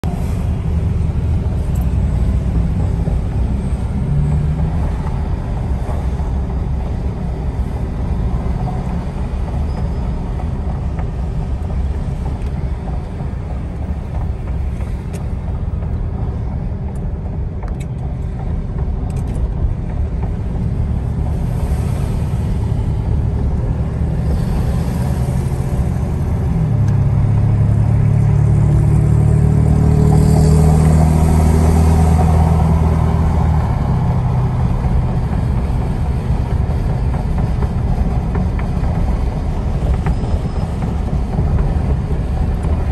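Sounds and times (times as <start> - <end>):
car road and engine rumble: 0.0 - 42.9
engine note rising: 20.8 - 42.9.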